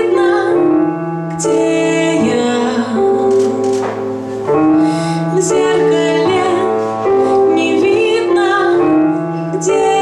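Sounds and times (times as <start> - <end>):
woman singing slow song: 0.0 - 3.9, 5.1 - 10.0
digital keyboard piano: 0.0 - 10.0.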